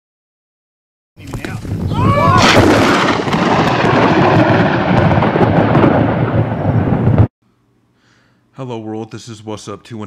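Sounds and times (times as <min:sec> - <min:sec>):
thunder rolling: 0:01.7 - 0:07.3.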